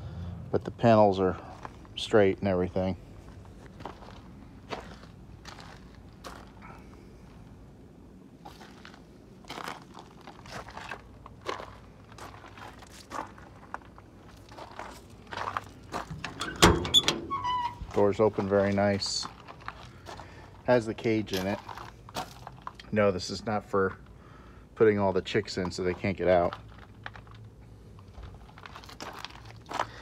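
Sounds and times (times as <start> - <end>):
footsteps on gravel: 3.2 - 6.9, 8.4 - 16.4, 17.8 - 22.8, 25.6 - 30.0
van door latch clunk: 16.1 - 17.8.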